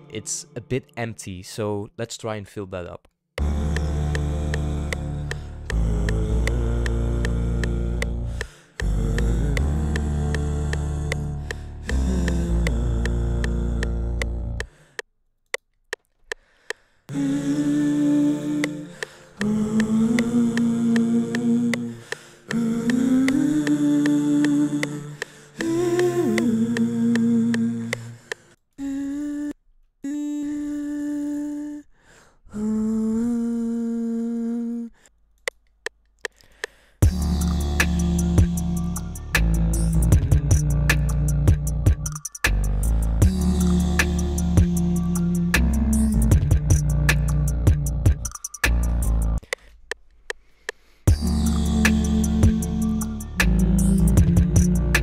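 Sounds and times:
beatboxed hi-hat clicks: 3.4s - 15.0s, 18.6s - 28.5s, 35.4s - 55.0s
vocal beat with deep bass: 3.4s - 15.0s, 17.1s - 29.5s, 36.3s - 49.7s, 51.1s - 55.0s.

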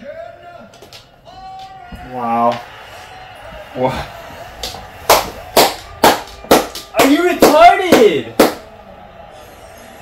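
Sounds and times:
hand claps: 4.6s - 8.7s.

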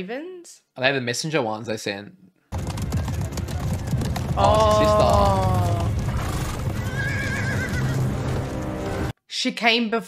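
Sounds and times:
horses' hooves clattering: 2.5s - 9.1s
horse whinnying: 4.3s - 8.5s.

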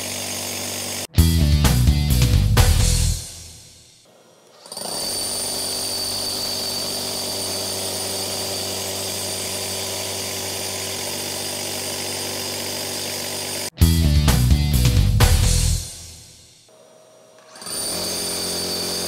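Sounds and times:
rotary hammer drilling: 0.0s - 1.1s, 4.0s - 13.8s, 16.7s - 19.0s.

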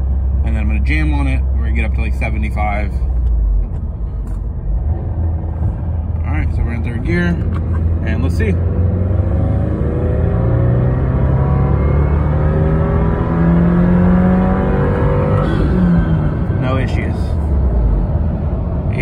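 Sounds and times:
car engine revving under full throttle: 4.7s - 18.9s.

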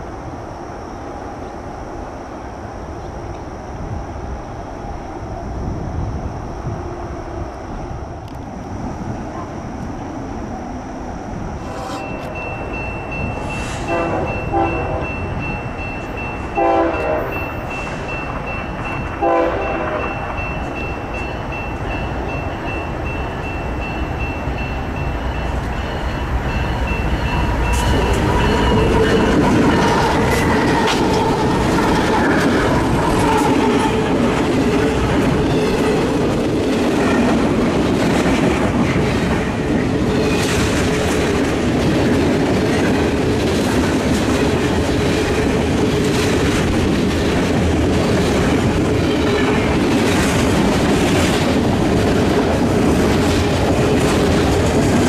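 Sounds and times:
train horn blast: 13.5s - 15.3s, 16.6s - 17.6s, 19.2s - 20.3s.

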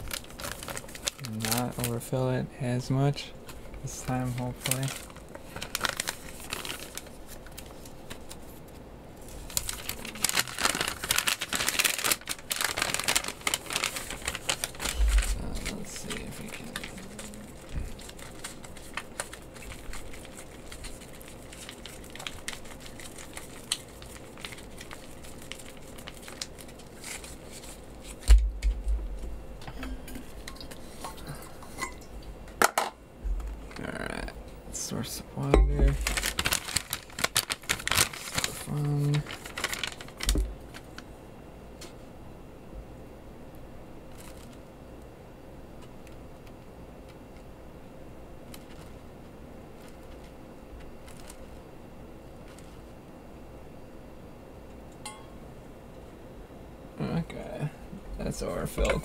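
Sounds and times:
plastic and foil pouches crinkling: 0.0s - 29.3s, 34.8s - 41.1s, 44.1s - 44.7s, 48.4s - 52.9s.

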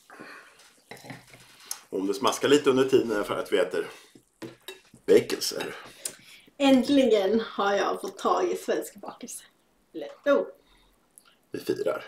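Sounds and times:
glasses and plates moved on table: 0.9s - 1.5s.

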